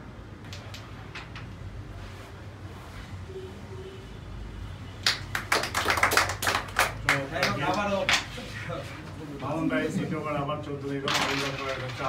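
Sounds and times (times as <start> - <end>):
people clapping: 5.0 - 8.3.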